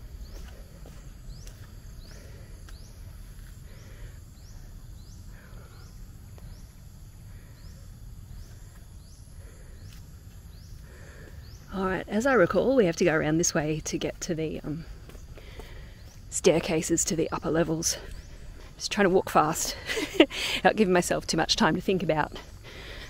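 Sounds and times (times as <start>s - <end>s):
steady low rumble: 0.0s - 23.0s.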